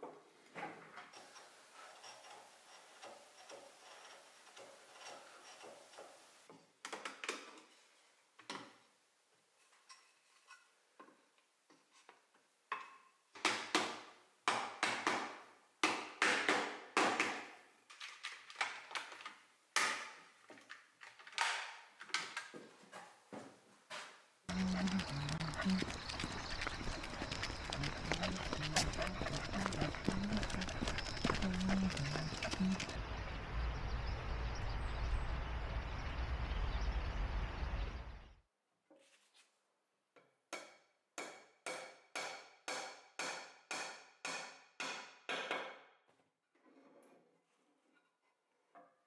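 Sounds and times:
dog claws clicking on concrete: 0:24.5 - 0:33.0
footsteps on concrete: 0:24.5 - 0:33.0
low steady rumble: 0:33.0 - 0:38.4.

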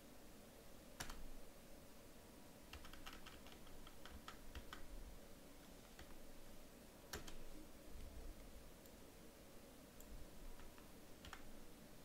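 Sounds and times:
computer keyboard keystrokes: 0:01.0 - 0:01.2, 0:02.7 - 0:04.9, 0:07.1 - 0:07.4.

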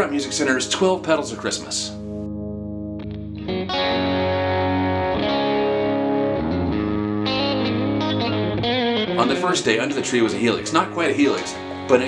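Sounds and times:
electric guitar ringing chords: 0:00.0 - 0:12.0.

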